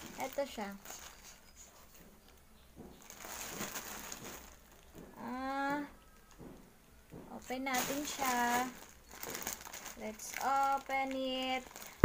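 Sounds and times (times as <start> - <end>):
plastic bag crinkling: 0.0 - 1.7, 2.3 - 5.2, 7.4 - 12.0.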